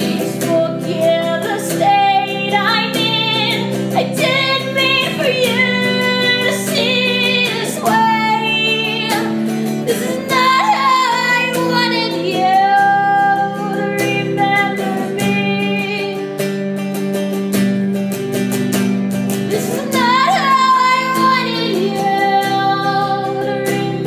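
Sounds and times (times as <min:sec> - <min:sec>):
woman singing: 0:00.0 - 0:16.7, 0:19.3 - 0:24.0
acoustic guitar: 0:00.0 - 0:24.0.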